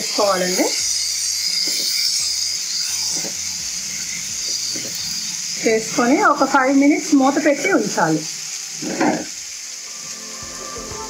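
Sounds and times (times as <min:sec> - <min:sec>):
mushrooms sizzling in oil: 0:00.0 - 0:11.0.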